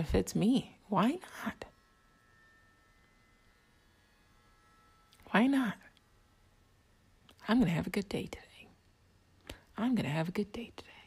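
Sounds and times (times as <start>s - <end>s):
faint steady high tones: 0.0s - 11.0s.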